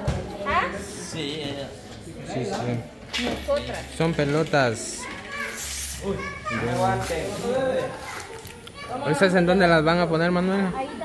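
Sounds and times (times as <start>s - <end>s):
background chatter with children: 0.0s - 11.0s.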